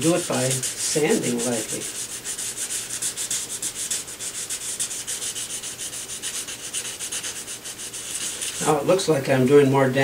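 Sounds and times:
sandpaper rubbing on wood: 0.0s - 9.0s.

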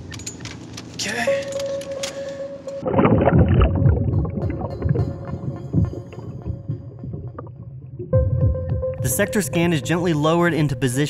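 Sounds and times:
underwater water churning and bubbling: 2.8s - 8.8s.

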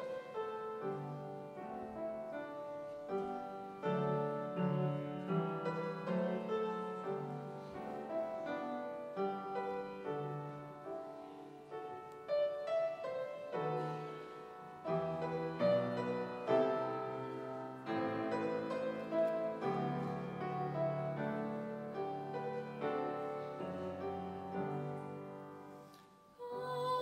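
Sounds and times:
slow gentle piano: 0.0s - 27.0s.

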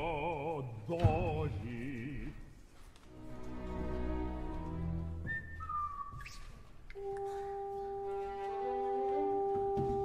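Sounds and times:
music: 0.0s - 10.0s
two-note whistle: 5.2s - 7.9s.

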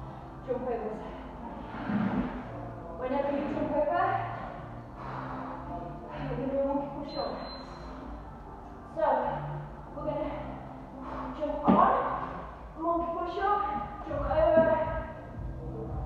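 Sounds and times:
woman talking: 0.4s - 1.2s, 2.9s - 4.3s, 10.0s - 10.6s, 11.4s - 12.2s, 12.8s - 15.1s.

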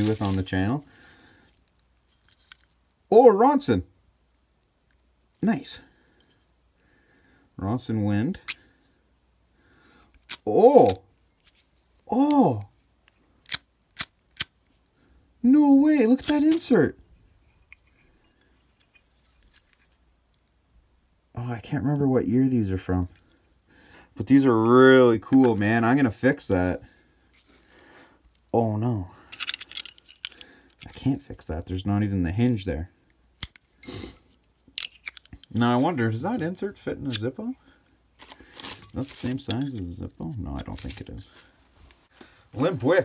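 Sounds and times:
soft breathy hiss: 0.0s - 2.1s, 5.4s - 10.2s, 23.0s - 24.2s, 26.4s - 31.3s, 32.7s - 34.6s.

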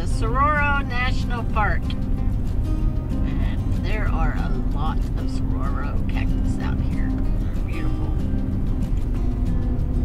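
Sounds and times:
truck road and engine noise: 0.0s - 10.0s.

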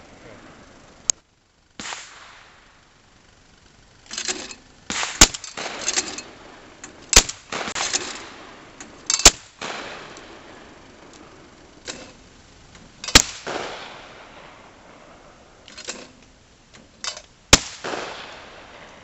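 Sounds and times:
shotgun shots with echo: 1.8s - 2.6s, 4.9s - 5.9s, 7.1s - 8.4s, 9.2s - 10.4s, 13.1s - 14.7s, 17.5s - 18.9s
trap thrower clattering: 4.1s - 6.3s, 11.8s - 12.2s, 15.7s - 16.2s.

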